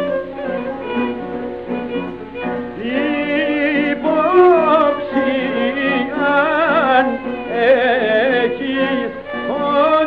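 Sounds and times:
rhythmic accompaniment: 0.0 - 10.0
violin melody: 0.0 - 10.0
person singing: 2.7 - 10.0.

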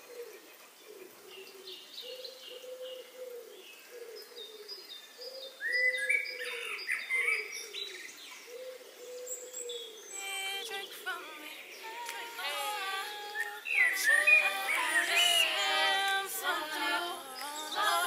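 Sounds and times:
small birds chirping: 3.6 - 18.0
person singing: 10.2 - 18.0.

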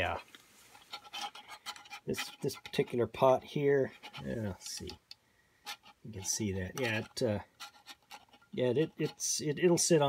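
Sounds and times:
metal pot clicking and scraping: 0.7 - 3.3, 3.9 - 9.5.

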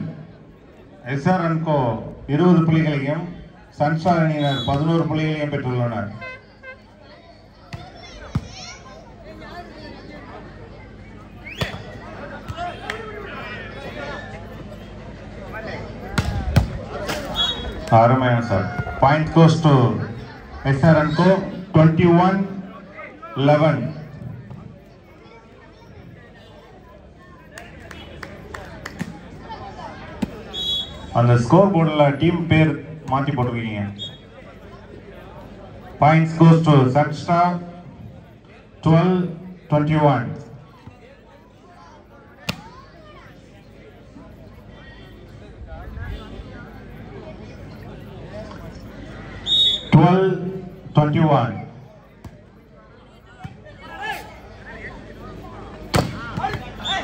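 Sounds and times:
faint crowd chatter: 0.0 - 57.0
whistle blast: 4.3 - 4.9, 17.3 - 17.8, 30.5 - 31.1, 34.0 - 34.3, 49.4 - 50.0, 56.8 - 57.0
volleyball bouncing on dirt: 11.5 - 12.6, 16.1 - 17.2, 42.4 - 42.7, 55.9 - 56.8
volleyball being hit: 55.9 - 56.7.

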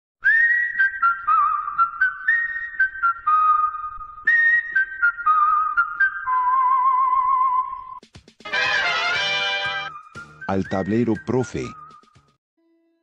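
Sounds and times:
whistle-like jingle melody: 4.4 - 12.3.

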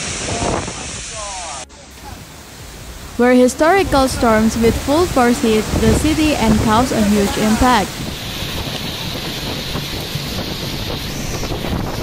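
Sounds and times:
heavy rain: 0.0 - 12.0
strong wind: 0.0 - 12.0.

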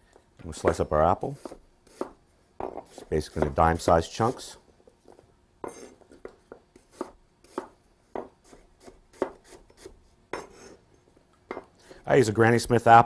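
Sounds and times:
knife chopping on wooden board: 1.4 - 3.8, 6.8 - 9.6.

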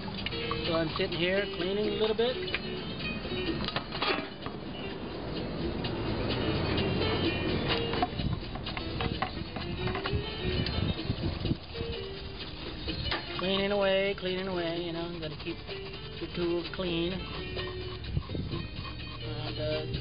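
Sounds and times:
music playing: 0.0 - 20.0
tools knocking and clinking: 7.8 - 10.2.

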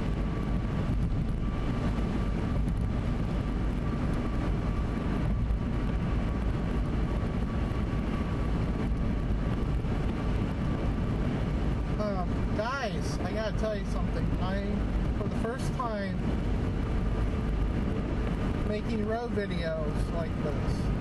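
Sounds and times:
engine drone: 0.0 - 21.0
tyre and road noise: 0.0 - 21.0.

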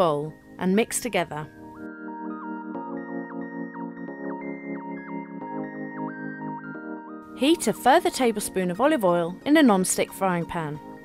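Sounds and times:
light keyboard melody: 0.0 - 11.0
soft synthesizer chords: 1.4 - 11.0.

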